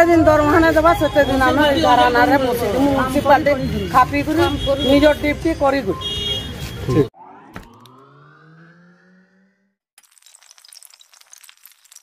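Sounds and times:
synthetic hum rising in pitch: 0:07.1 - 0:09.9.

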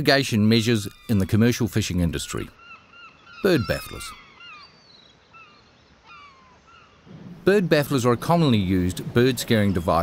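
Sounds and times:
seabird squawks: 0:00.8 - 0:07.1.

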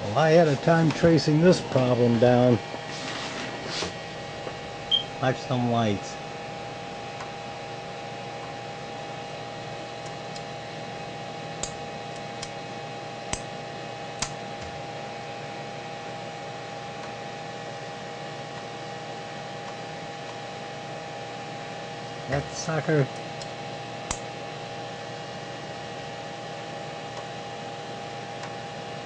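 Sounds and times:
computer fan humming: 0:00.0 - 0:29.0.

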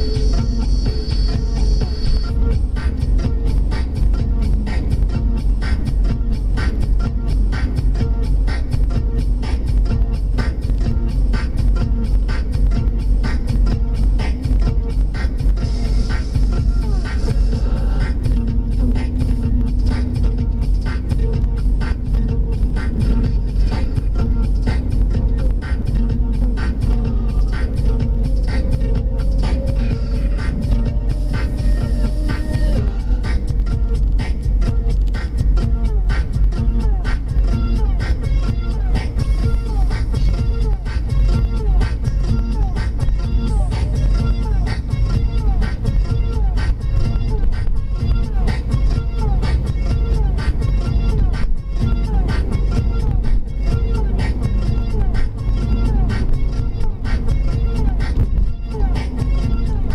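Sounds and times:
electronic dance music on radio: 0:00.0 - 0:59.9
road and engine rumble: 0:00.0 - 0:59.9.

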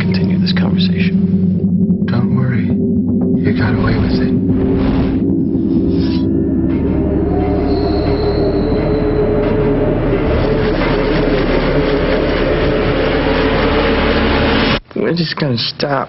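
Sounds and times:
dissonant screeching drone: 0:00.0 - 0:14.8
thin high whine: 0:00.0 - 0:14.8.

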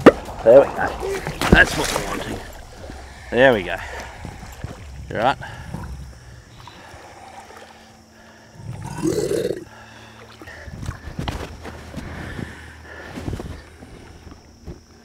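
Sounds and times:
knocks and splashes: 0:00.0 - 0:06.9
crocodile growling: 0:00.4 - 0:09.9.

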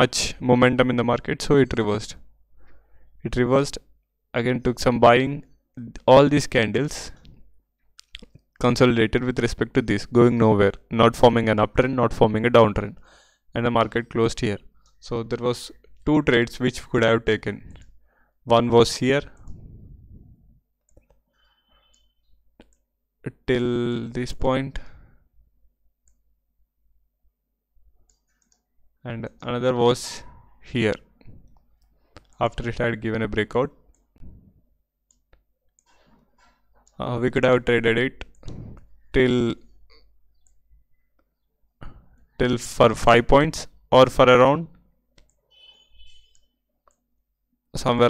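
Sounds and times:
computer mouse clicks: 0:20.8 - 0:22.9, 0:28.1 - 0:28.6, 0:35.1 - 0:36.1, 0:40.3 - 0:40.6, 0:45.2 - 0:45.4.

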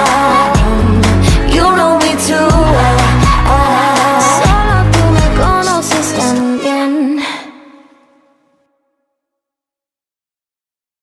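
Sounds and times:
pop backing music: 0:00.0 - 0:07.6.

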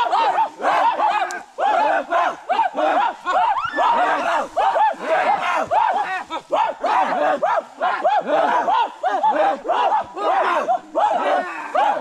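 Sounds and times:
men shouting war cries: 0:00.0 - 0:12.0.

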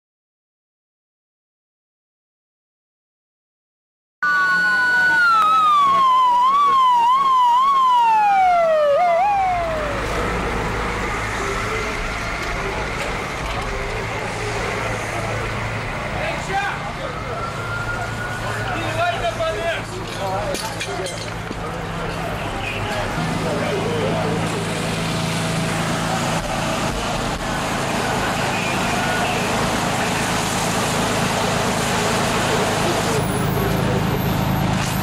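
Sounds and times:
fire engine running: 0:04.2 - 0:35.0
fire engine sirens: 0:04.2 - 0:35.0.

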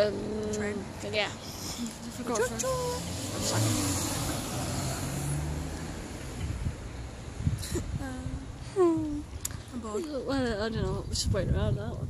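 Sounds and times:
road vehicle passing: 0:00.0 - 0:10.8.

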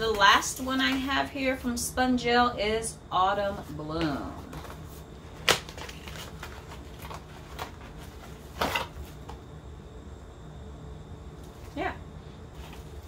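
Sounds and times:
card scraping rustle: 0:04.5 - 0:09.3
cardboard flap snapping: 0:05.4 - 0:07.8, 0:08.6 - 0:08.9.

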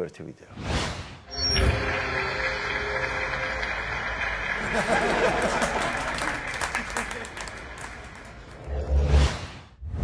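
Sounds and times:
clapping: 0:01.8 - 0:08.6.

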